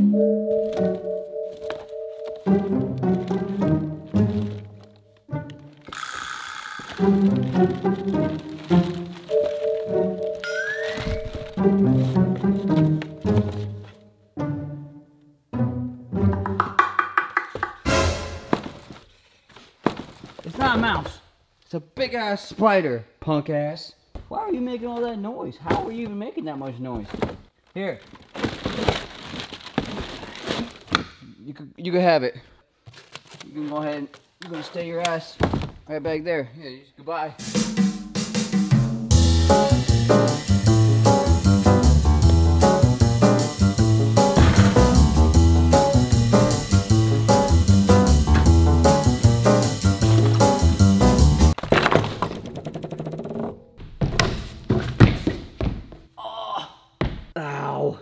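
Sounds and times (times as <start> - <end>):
background music: 0.0 - 18.7, 37.3 - 51.6
plastic wrapping crinkling: 6.8 - 11.6, 27.6 - 30.9
heavy landing thuds: 44.2 - 45.4
scooter rolling on wooden ramp: 51.6 - 55.9.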